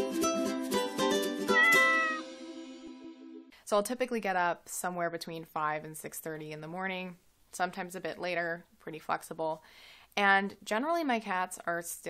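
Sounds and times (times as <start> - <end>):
cat meowing: 1.5 - 2.2.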